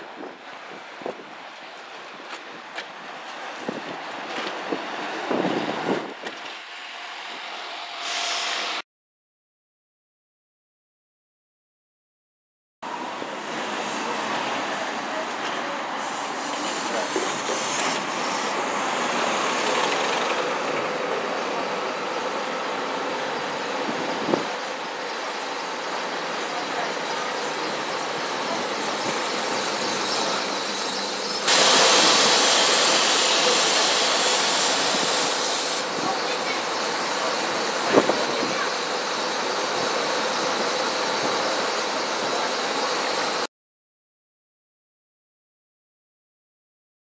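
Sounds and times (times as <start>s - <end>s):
bus engines running: 12.9s - 43.5s.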